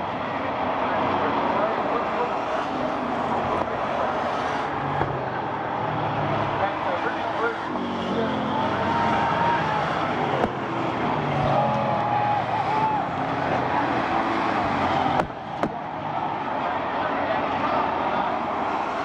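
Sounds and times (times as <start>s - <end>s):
crowd voices: 0.0s - 19.0s
stock car engines racing: 0.0s - 19.0s.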